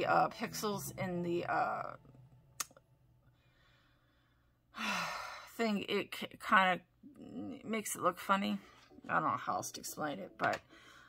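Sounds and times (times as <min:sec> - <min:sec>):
woman breathing: 0:03.2 - 0:05.6, 0:10.7 - 0:11.0
woman sighing: 0:04.7 - 0:05.5.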